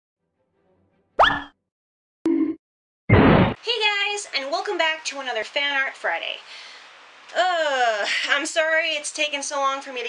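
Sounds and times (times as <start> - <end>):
upward-sweeping bloop: 1.2 - 1.5.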